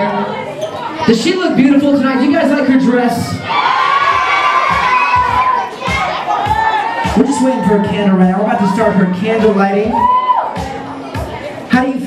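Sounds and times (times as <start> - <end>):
children cheering and shouting: 2.4 - 11.3.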